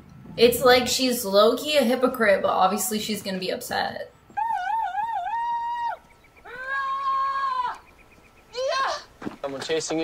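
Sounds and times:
animal howls: 4.3 - 7.8.

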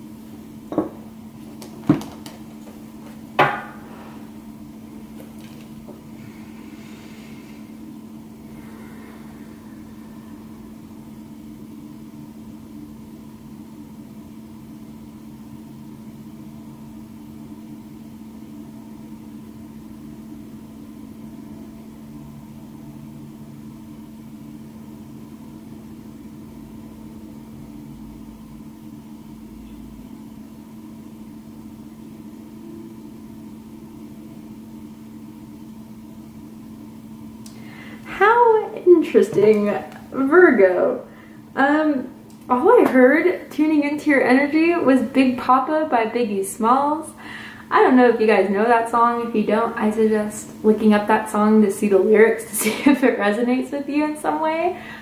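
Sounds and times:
low machine hum: 0.0 - 55.0.

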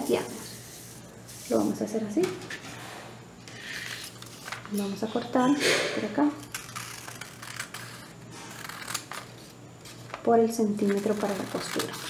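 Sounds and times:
scissors snipping paper: 6.4 - 9.3, 10.6 - 12.0.

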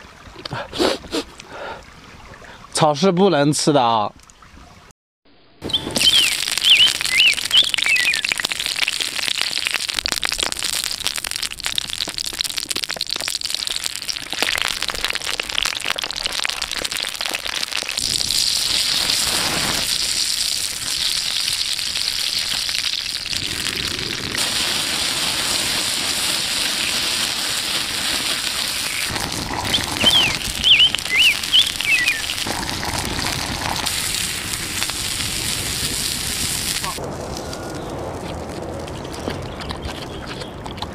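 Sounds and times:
bird chirping: 5.6 - 8.5, 28.8 - 32.4, 39.0 - 40.6
wood fire crackling: 5.7 - 39.6.

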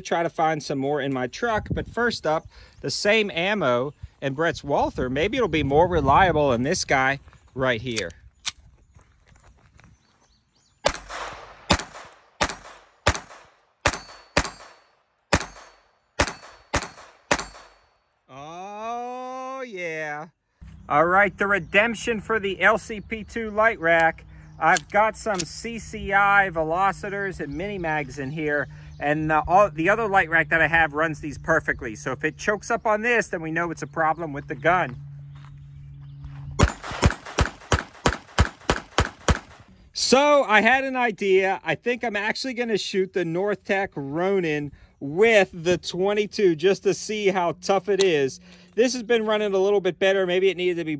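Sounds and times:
pistol shots: 10.8 - 17.8, 36.6 - 39.6.

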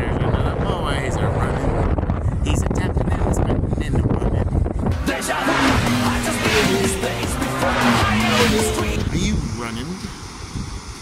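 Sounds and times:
wind buffeting microphone: 0.0 - 5.1, 8.8 - 11.0.

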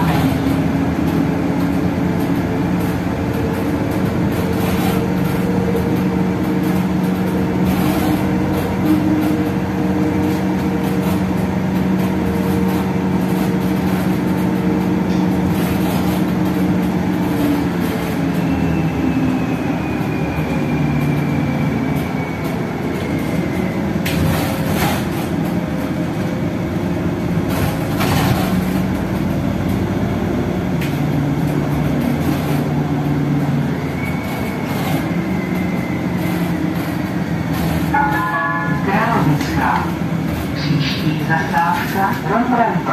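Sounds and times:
bus engine drone: 0.0 - 42.9
road noise: 0.0 - 42.9.

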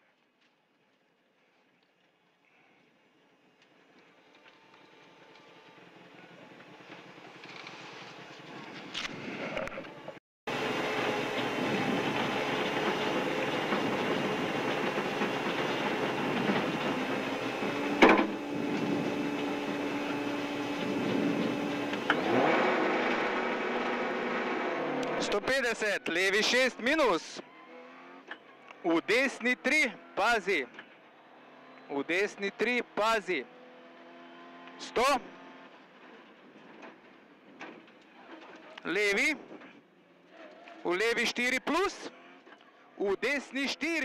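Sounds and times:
car engine running: 9.9 - 25.6.

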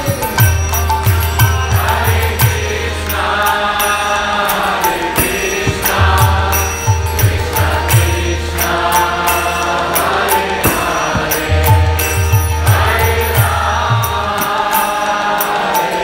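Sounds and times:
devotional chanting: 0.0 - 16.0
hand cymbals: 0.0 - 16.0
sustained droning tones: 0.0 - 16.0.

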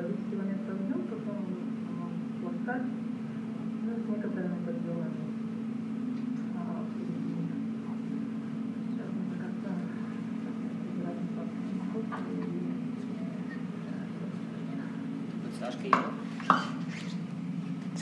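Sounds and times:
faint indistinct voices: 0.0 - 17.2
low hum from speakers: 0.0 - 18.0.

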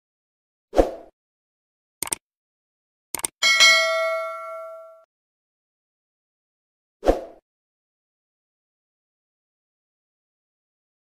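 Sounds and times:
notification bell ding: 3.4 - 5.0.

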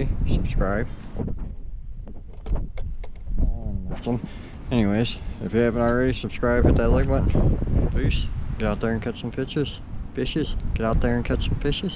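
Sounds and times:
wind rumbling on microphone: 0.0 - 11.9
camera handling clicks and knocks: 2.1 - 3.3.

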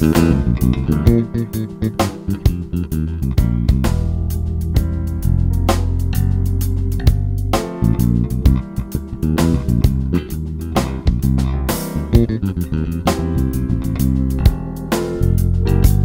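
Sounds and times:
drum beat: 0.0 - 6.2, 7.0 - 16.0
electric bass groove: 0.0 - 16.0.

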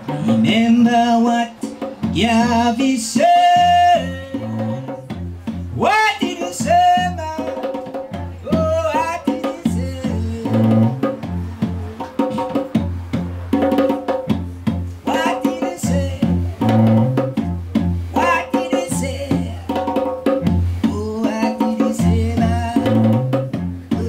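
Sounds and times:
man singing: 0.0 - 12.8, 15.0 - 16.9, 18.1 - 20.1, 20.8 - 24.0
hand drum steady rhythm: 0.0 - 24.0
bowed cello low notes: 9.7 - 13.5, 22.0 - 24.0.

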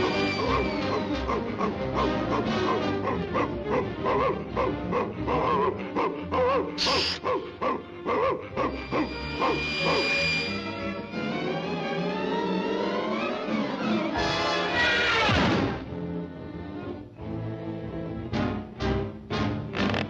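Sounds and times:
orchestral cartoon music: 0.0 - 20.0.

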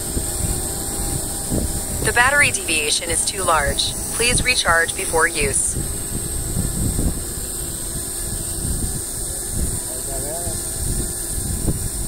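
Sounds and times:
wind buffeting microphone: 0.0 - 3.0, 5.4 - 12.0
drone propellers humming: 0.0 - 12.0.

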